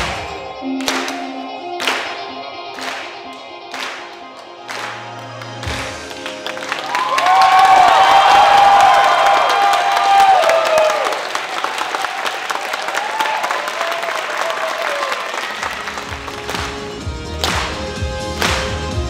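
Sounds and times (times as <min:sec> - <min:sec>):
music: 0:00.0 - 0:08.1, 0:15.4 - 0:19.0
audience applauding and cheering: 0:00.0 - 0:19.0.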